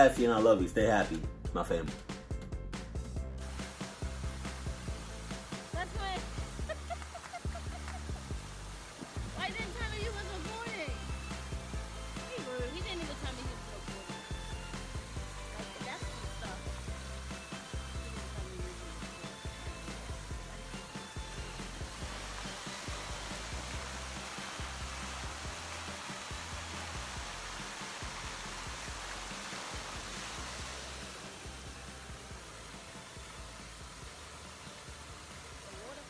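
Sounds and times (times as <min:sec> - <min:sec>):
music with pulsing bass beat: 0:00.0 - 0:34.3
fountain water falling: 0:03.3 - 0:36.0.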